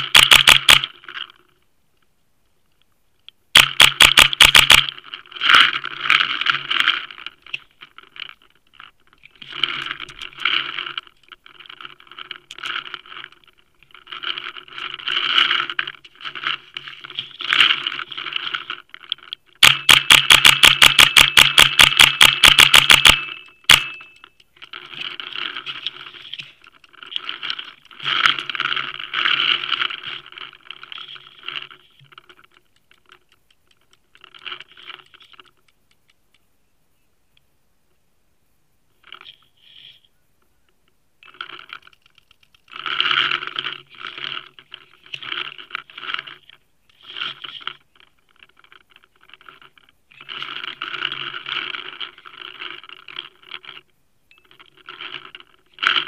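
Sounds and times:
paintball marker firing: 0:19.6 - 0:24.0.

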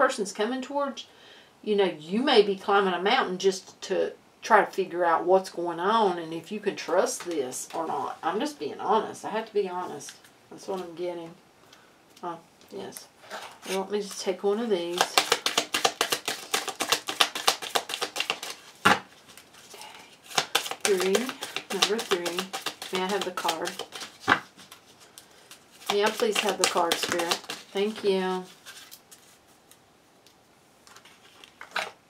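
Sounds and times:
cards being shuffled: 0:14.8 - 0:29.8, 0:30.9 - 0:32.0.

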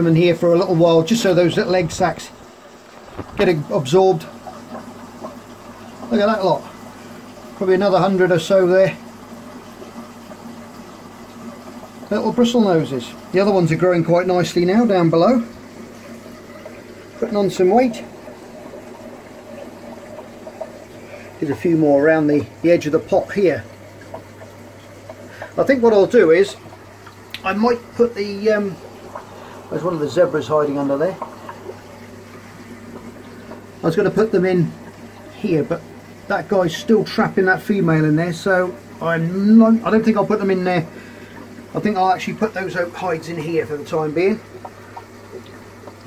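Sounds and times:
aquarium equipment humming: 0:00.0 - 0:46.0
faint water hiss: 0:00.0 - 0:46.0
man speaking: 0:29.7 - 0:31.2.

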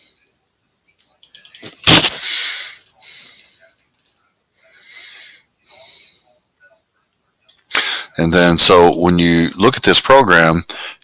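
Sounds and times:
man breathing noisily: 0:02.1 - 0:03.8, 0:04.6 - 0:06.4, 0:07.7 - 0:08.2, 0:10.7 - 0:11.0.

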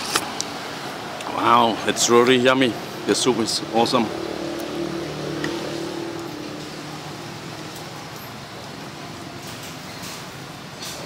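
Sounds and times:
street background noise: 0:00.0 - 0:11.0
vehicle engine passing: 0:01.7 - 0:09.3.

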